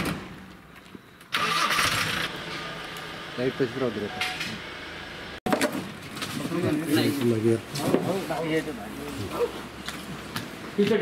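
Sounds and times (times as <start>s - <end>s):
van engine starting and idling: 1.3s - 5.4s.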